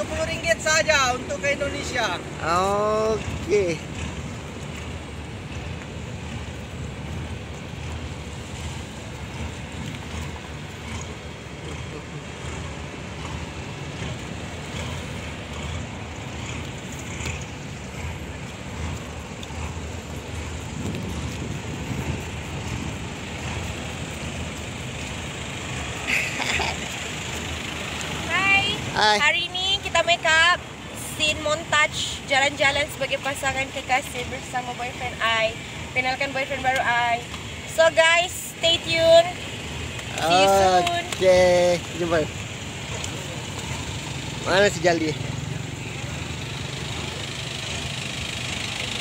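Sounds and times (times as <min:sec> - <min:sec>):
faint outdoor background sound: 0:00.0 - 0:49.0
wind rumbling on microphone: 0:03.3 - 0:25.3.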